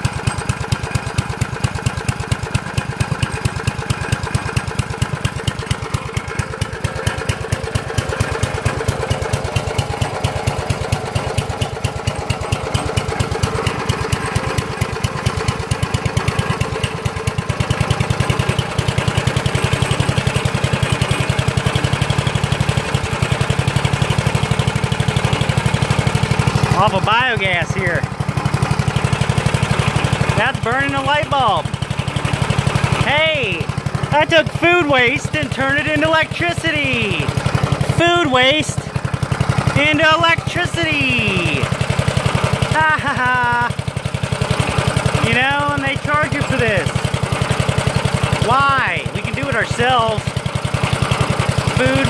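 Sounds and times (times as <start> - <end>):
small generator engine running: 0.0 - 52.0.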